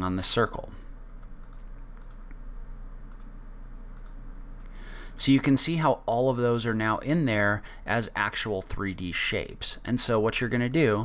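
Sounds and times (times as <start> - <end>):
low steady hum: 0.0 - 11.0
computer mouse clicking: 1.2 - 2.4, 3.1 - 3.3, 3.9 - 4.7.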